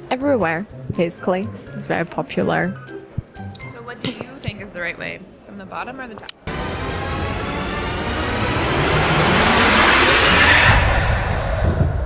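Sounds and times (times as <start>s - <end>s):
rumbling swell of noise: 6.5s - 12.0s.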